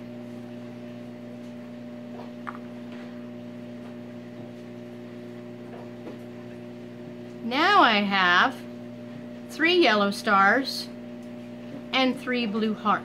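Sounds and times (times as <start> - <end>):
electrical hum with held tones: 0.0 - 13.0.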